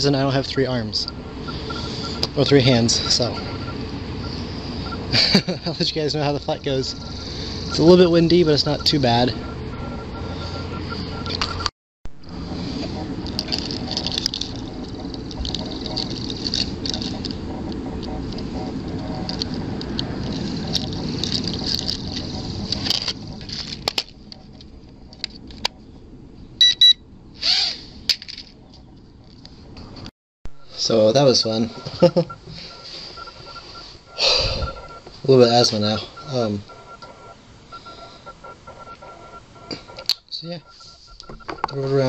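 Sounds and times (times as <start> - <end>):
short electronic beeps: 0.9 - 5.1, 6.2 - 11.7, 26.6 - 27.0, 30.5 - 42.0.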